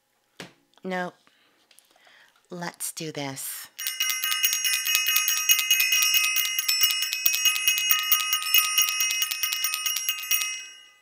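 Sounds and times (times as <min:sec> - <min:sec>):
bell rung rapidly: 0:03.8 - 0:11.0.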